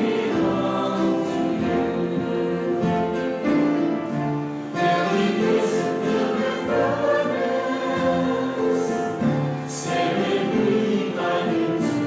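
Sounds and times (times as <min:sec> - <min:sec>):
choir singing a hymn: 0:00.0 - 0:12.0
instrumental accompaniment: 0:00.0 - 0:12.0.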